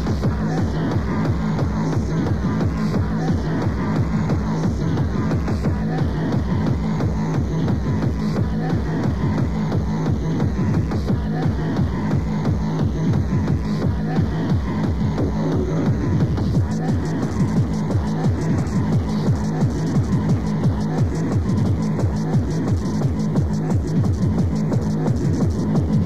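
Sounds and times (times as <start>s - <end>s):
fast hard techno music: 0.0s - 26.0s.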